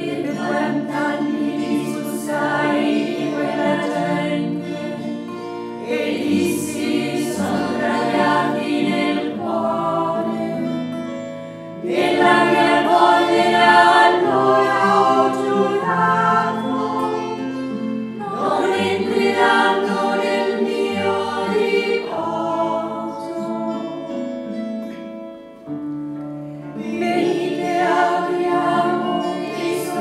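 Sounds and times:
choir singing a hymn: 0:00.0 - 0:25.0, 0:26.6 - 0:30.0.

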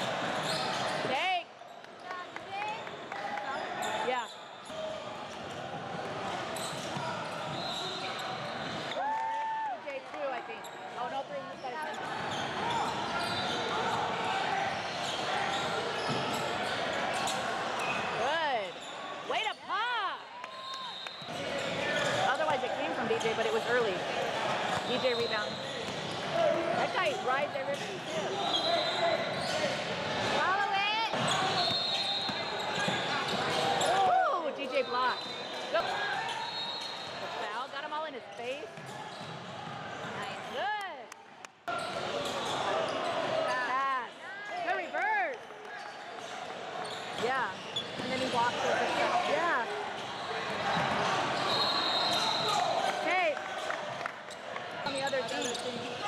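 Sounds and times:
sneakers squeaking: 0:00.1 - 0:01.3, 0:06.4 - 0:09.3, 0:10.3 - 0:19.7, 0:20.5 - 0:30.5, 0:31.1 - 0:40.6, 0:41.7 - 0:43.7, 0:44.6 - 0:56.0.

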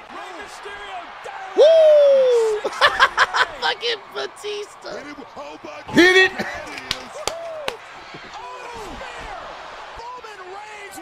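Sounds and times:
faint wrestling broadcast: 0:00.0 - 0:11.0.

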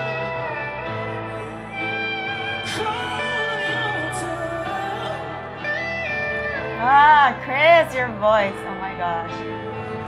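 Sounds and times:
loud voice singing: 0:00.0 - 0:08.1
sliding guitar notes: 0:00.0 - 0:10.0.

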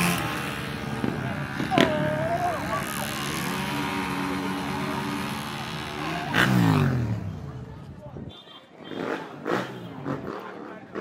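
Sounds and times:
motorcycle engine at high revs: 0:00.0 - 0:07.6.

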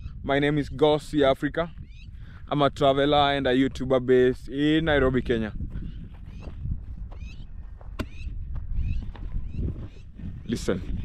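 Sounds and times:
wind rumble on microphone: 0:00.0 - 0:11.0
wild birds chirping: 0:01.8 - 0:02.4, 0:05.8 - 0:10.6.

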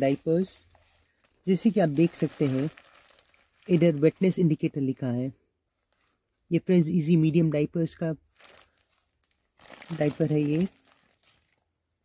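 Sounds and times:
diaper crinkling and rustling: 0:00.0 - 0:05.0, 0:08.3 - 0:11.7.

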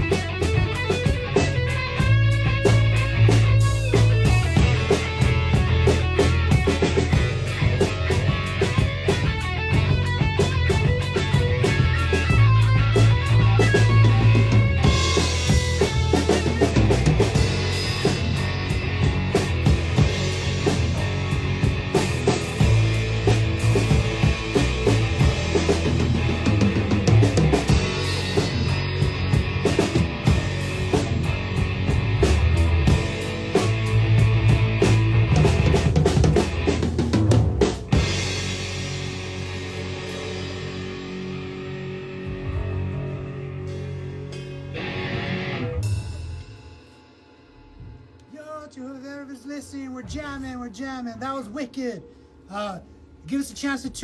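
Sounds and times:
electric guitar: 0:00.0 - 0:47.0
bass guitar: 0:00.0 - 0:48.4
drum kit: 0:00.0 - 0:54.0.

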